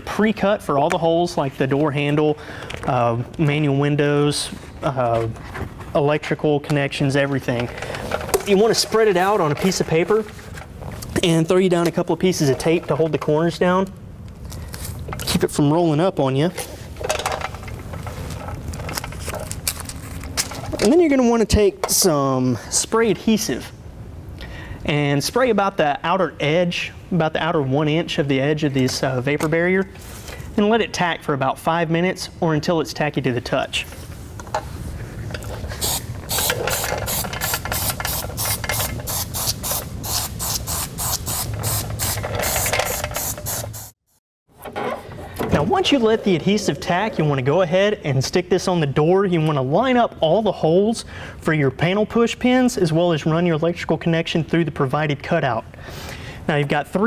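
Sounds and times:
aerosol spray bursts: 37.8 - 44.0.

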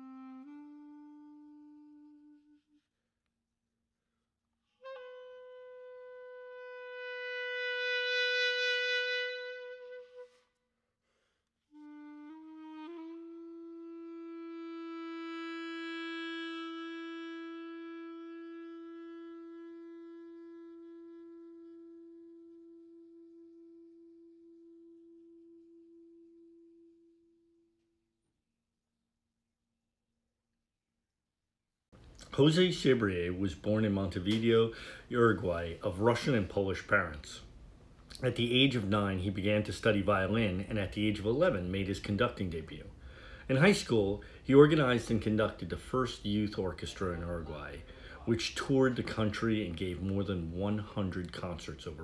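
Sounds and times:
clarinet long held notes: 0.0 - 2.9, 4.8 - 10.5, 11.7 - 27.7.

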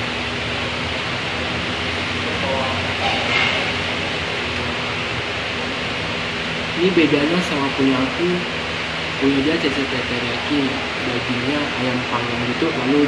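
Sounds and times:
restaurant hiss: 0.0 - 13.0.

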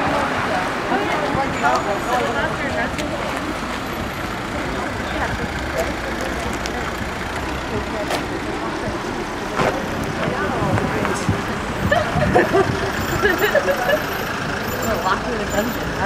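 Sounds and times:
road traffic passing: 0.0 - 16.0.

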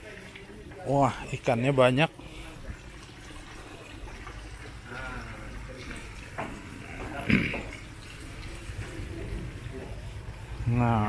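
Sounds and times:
running water: 0.0 - 11.0.

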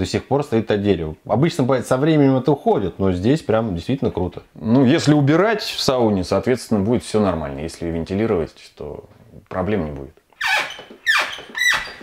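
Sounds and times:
sharp high squeaks: 10.4 - 12.0.

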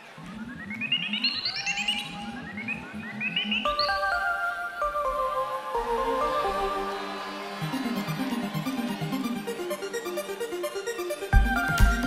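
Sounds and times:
electronic synthesizer music: 0.0 - 12.0.

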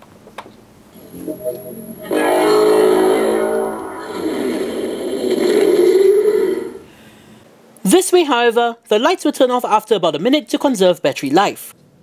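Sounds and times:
electronic ringing tone: 1.0 - 5.2.

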